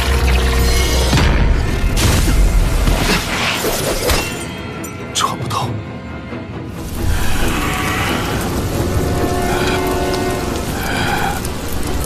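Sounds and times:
background music with held notes: 4.2 - 12.0
flames crackling and hissing: 6.7 - 12.0.

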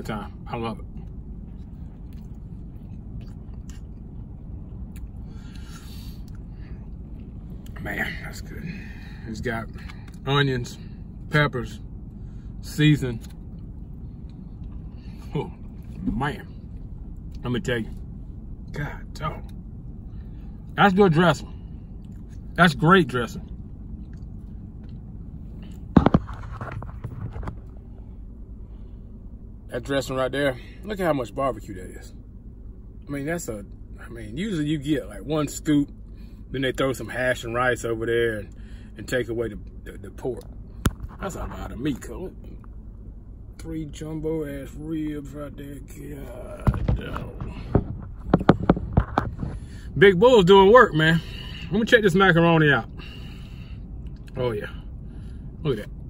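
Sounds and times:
low rumble in car cabin: 0.0 - 56.0
man chewing food: 1.1 - 6.5.

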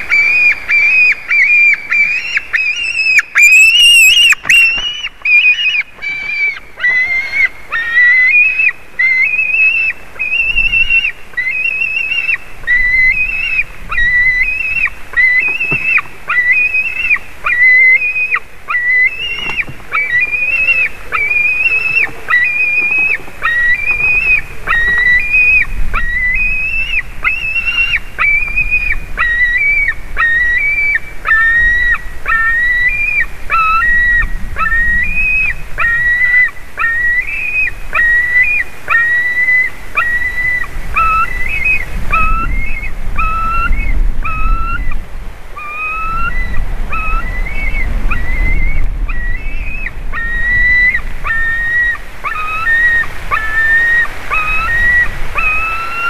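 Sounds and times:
eaglet high whistled begging calls: 0.0 - 56.0.

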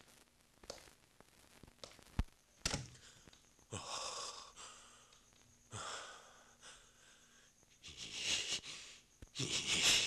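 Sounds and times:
person gasping and stammering: 2.9 - 10.0.

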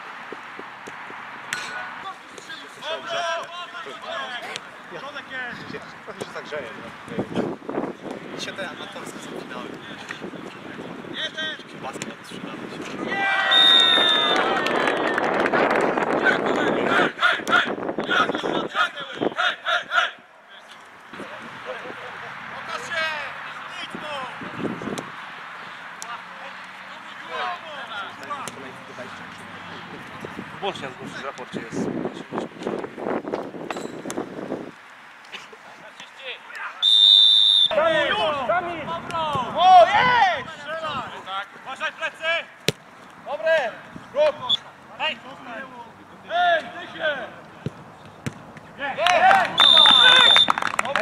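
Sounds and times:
players shouting: 1.6 - 5.4, 12.9 - 15.2, 16.1 - 24.6, 36.2 - 47.4, 48.8 - 51.0
referee's whistle blast: 13.5 - 14.5, 36.8 - 37.8, 49.6 - 50.6.

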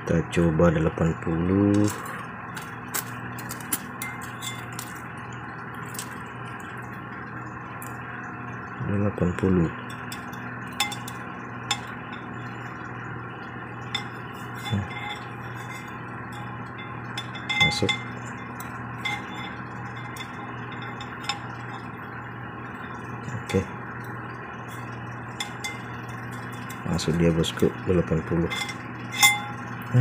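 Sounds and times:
steady background hum: 0.0 - 30.0
metal blades clinking on steel: 28.4 - 29.6.

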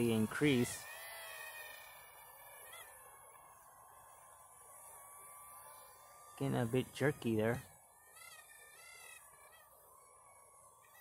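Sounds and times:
faint toy drone motors whine: 0.0 - 11.0.

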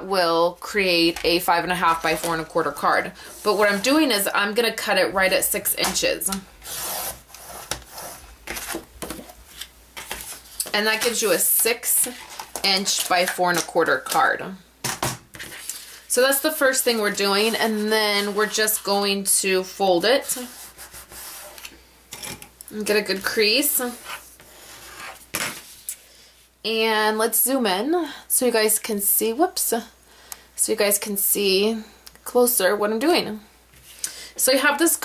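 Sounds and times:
bone folder scraping paper: 6.6 - 11.4.

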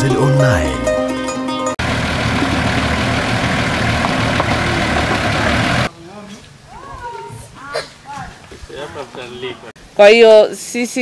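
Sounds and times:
plucked-string jingle: 0.0 - 1.8
children's voices outdoors: 6.6 - 8.6.

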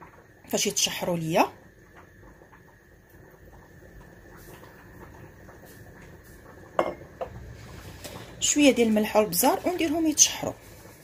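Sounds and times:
utensil scraping in frying pan: 6.2 - 11.0.

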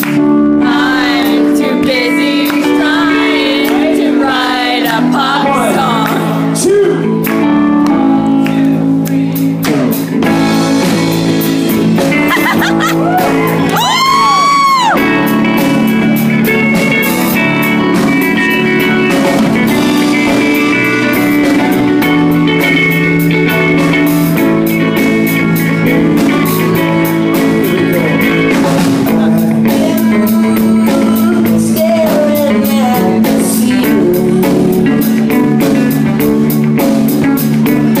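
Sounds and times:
live pop-rock band playing: 0.0 - 38.0.

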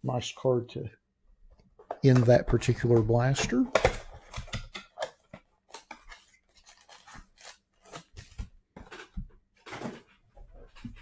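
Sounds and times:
packaging ripping: 5.7 - 9.1.

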